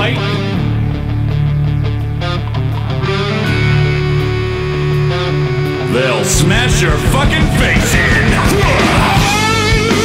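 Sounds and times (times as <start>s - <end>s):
vocals: 0.0s - 0.8s, 5.7s - 10.0s
distorted electric guitar riffing: 0.0s - 10.0s
rock band playing: 0.0s - 10.0s.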